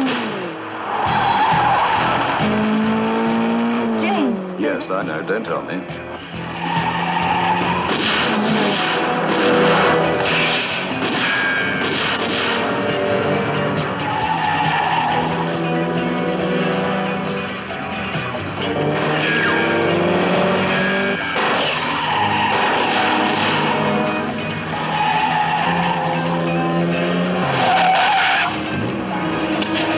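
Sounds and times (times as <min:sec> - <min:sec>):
car tyres squealing: 0:00.0 - 0:04.5, 0:06.0 - 0:29.9
background music: 0:00.0 - 0:29.9
car engines running: 0:00.0 - 0:29.9
tyre squeal: 0:20.7 - 0:24.1, 0:27.4 - 0:28.7.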